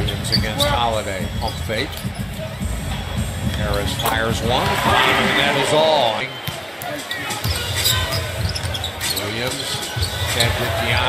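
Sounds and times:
arena noise: 0.0s - 11.0s
basketball bouncing on court: 6.4s - 10.3s.

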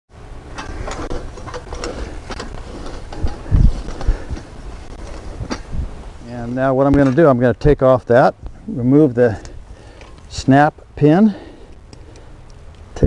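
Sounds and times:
wheel hoe scraping through soil: 0.5s - 7.3s.

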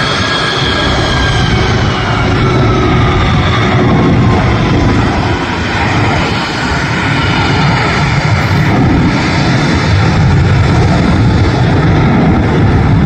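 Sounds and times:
jet engines roaring: 0.0s - 13.0s.

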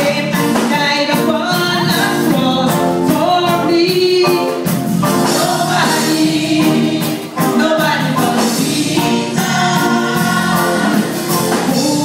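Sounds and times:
instrumental accompaniment: 0.0s - 12.0s
gospel choir singing: 5.0s - 12.0s.

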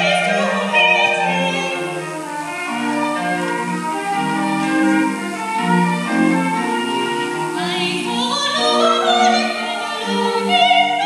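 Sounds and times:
choir music through small speakers: 0.0s - 11.0s.

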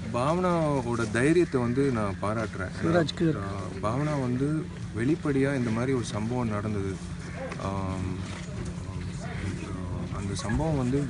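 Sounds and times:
faint background voices: 0.0s - 11.0s
outdoor noise: 0.0s - 11.0s
steady low hum: 0.0s - 11.0s.

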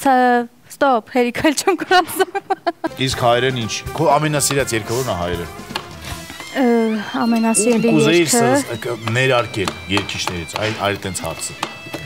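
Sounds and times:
man talking: 2.9s - 5.5s, 7.6s - 11.6s
knife chopping on cutting board: 4.4s - 5.0s, 9.0s - 10.8s.

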